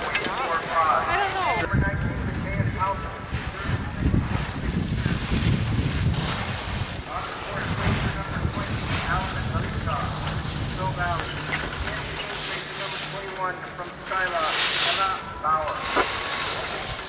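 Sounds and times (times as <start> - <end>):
wind buffeting microphone: 1.2 - 12.3
faint voices: 7.0 - 17.0.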